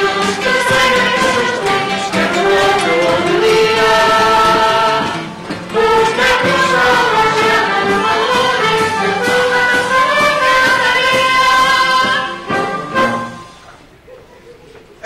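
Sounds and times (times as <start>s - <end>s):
band of guitars violins and brass: 0.0s - 13.7s.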